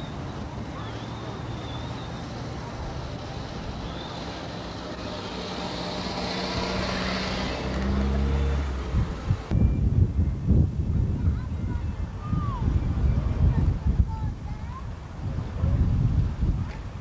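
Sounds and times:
vehicle engine humming: 0.0 - 9.6
wind buffeting microphone: 0.0 - 17.0.

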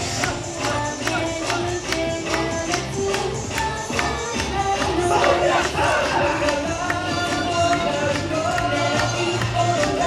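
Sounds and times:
dance music over loudspeakers: 0.0 - 10.0
dancers shouting together: 5.0 - 6.7.

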